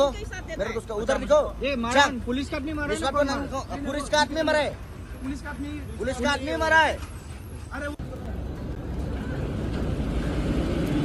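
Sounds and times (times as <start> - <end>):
passing vehicle engine and tyres: 4.6 - 11.0.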